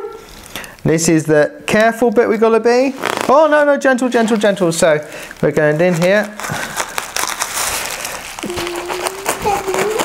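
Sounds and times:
plastic wrap crinkling: 0:01.7 - 0:10.0.

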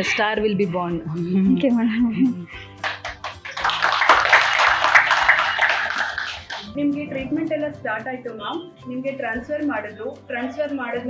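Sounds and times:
people clapping: 0:02.8 - 0:06.7.

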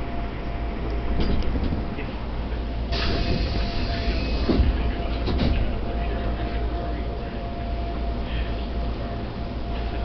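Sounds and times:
faint constant hum: 0:00.0 - 0:10.0
train cabin low rumble: 0:00.0 - 0:10.0.

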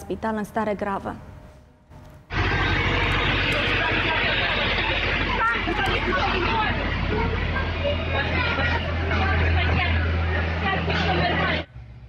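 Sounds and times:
vehicle engine humming: 0:01.9 - 0:12.0
crowd talking: 0:02.3 - 0:11.8.

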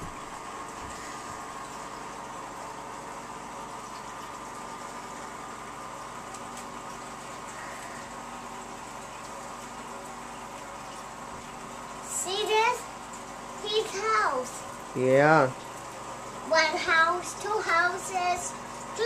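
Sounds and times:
aquarium equipment hum and hiss: 0:00.0 - 0:19.0.

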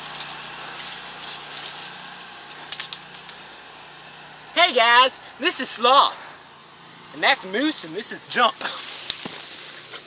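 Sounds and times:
leaves and branches rustling: 0:00.0 - 0:04.3, 0:05.3 - 0:10.0.

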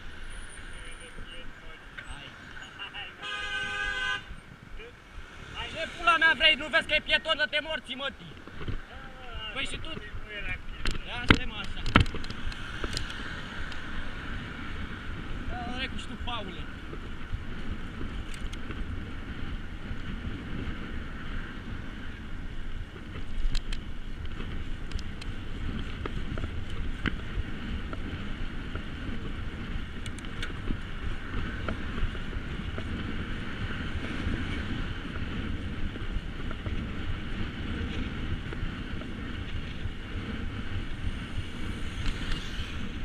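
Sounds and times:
bicycle rolling on asphalt: 0:00.0 - 0:02.9, 0:04.3 - 0:43.0
wind buffeting microphone: 0:00.0 - 0:43.0
sharp clicks: 0:18.2 - 0:18.7, 0:30.0 - 0:30.6.

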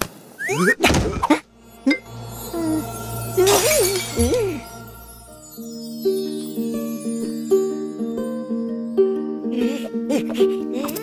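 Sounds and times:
background music: 0:01.4 - 0:11.0
wavering pitched sound: 0:01.5 - 0:07.4
glass shattering: 0:03.4 - 0:05.2.

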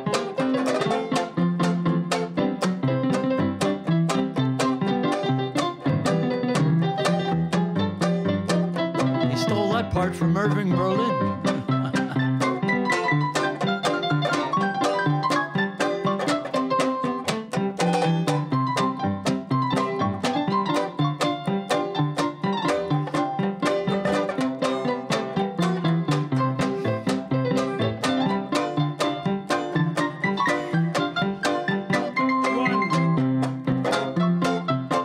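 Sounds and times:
banjo strumming chords: 0:00.0 - 0:35.0
electronic keyboard piano tune: 0:01.3 - 0:17.8, 0:18.4 - 0:35.0.

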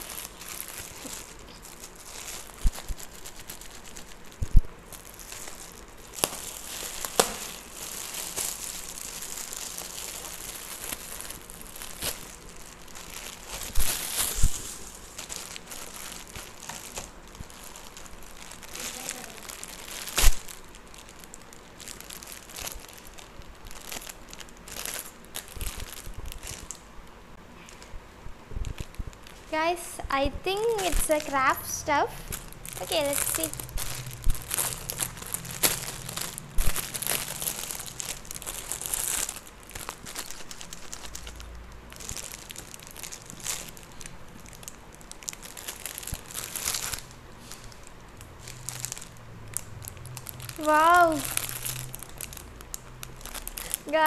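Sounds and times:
plastic wrapping crinkling: 0:00.0 - 0:26.9, 0:27.5 - 0:54.0.

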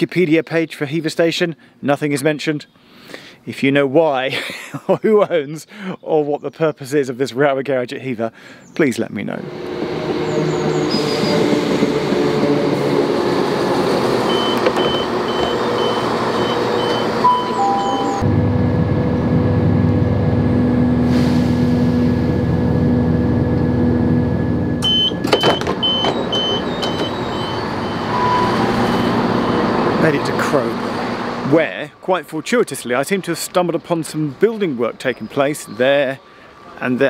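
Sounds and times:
train engine rumble: 0:09.2 - 0:31.6
high door-warning beeps: 0:14.2 - 0:18.3, 0:24.8 - 0:29.7.

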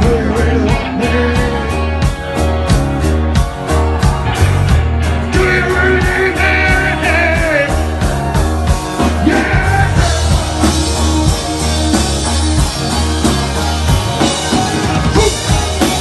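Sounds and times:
man singing: 0:00.0 - 0:02.3, 0:05.3 - 0:07.8, 0:09.0 - 0:10.6, 0:15.1 - 0:16.0
drum kit: 0:00.0 - 0:16.0
electric bass: 0:00.0 - 0:16.0.

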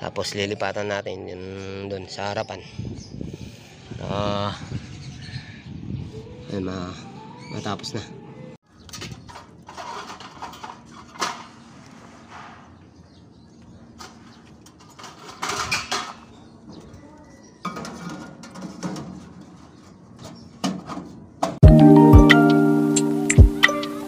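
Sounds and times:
panels clicking and rattling: 0:17.6 - 0:21.6.

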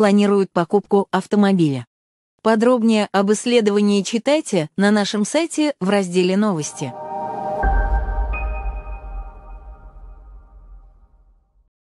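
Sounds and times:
deep bass rumble: 0:07.0 - 0:11.2.

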